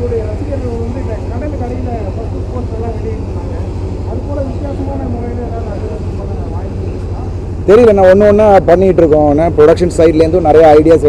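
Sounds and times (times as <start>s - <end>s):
chatter of voices: 0.0s - 8.7s
steady low hum: 0.0s - 11.0s.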